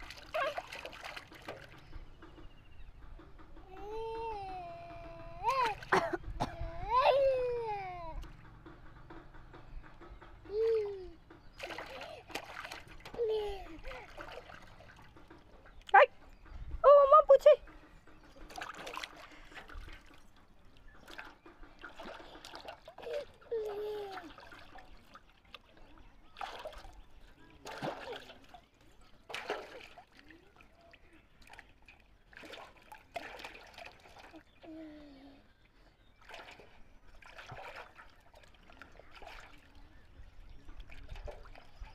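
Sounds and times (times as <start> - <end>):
water splashing in a plastic tub: 0.0 - 2.6, 4.9 - 16.1, 16.9 - 35.0, 36.0 - 41.9
toddler voice cries: 3.7 - 5.8, 6.5 - 8.2.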